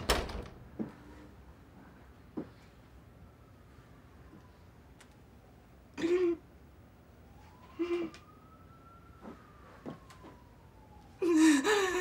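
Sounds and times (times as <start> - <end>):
woman's breathy vocal sounds: 11.2 - 12.0.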